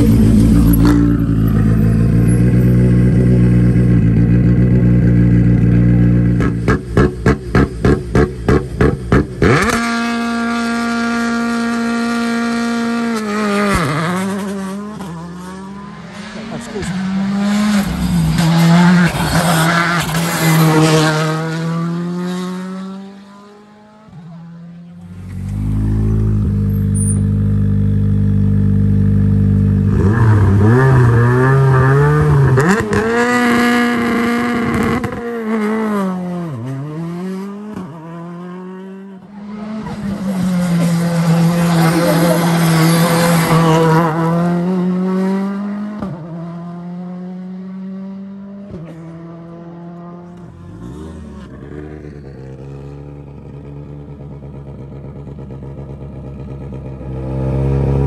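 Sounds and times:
car engine idling and revving: 0.0 - 58.0
rally car passing at speed: 9.4 - 27.9, 29.8 - 58.0.

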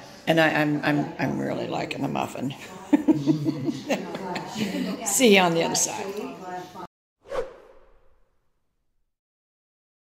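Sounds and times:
cafe voices: 0.0 - 6.9
whoosh sound effect: 7.2 - 8.5.

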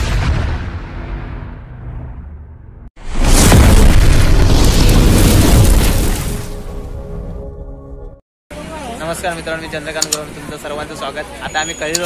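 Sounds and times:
explosion boom rumbling: 0.0 - 7.4
music: 6.6 - 8.2.

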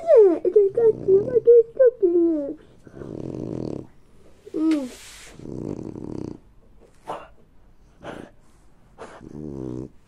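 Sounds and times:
dog growling: 0.0 - 1.8, 2.8 - 4.0, 5.3 - 7.3, 9.0 - 10.0.

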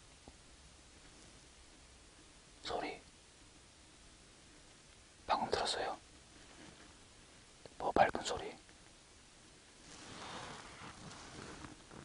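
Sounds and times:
faint background hiss: 0.0 - 12.0
man whispering: 2.6 - 3.1, 5.2 - 6.1, 7.7 - 8.7.

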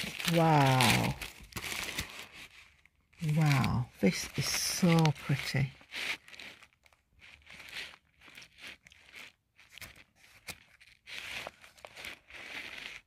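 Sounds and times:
plastic sleeves crinkling: 0.0 - 13.0.

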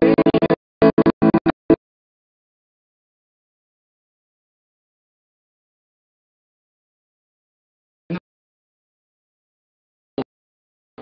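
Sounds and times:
stuttering keyboard chords: 0.0 - 1.8.

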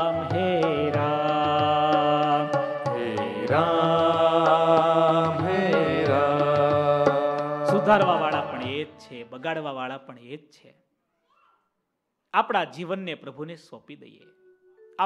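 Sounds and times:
low accompaniment: 0.0 - 9.0
man singing devotional song: 0.0 - 10.0.

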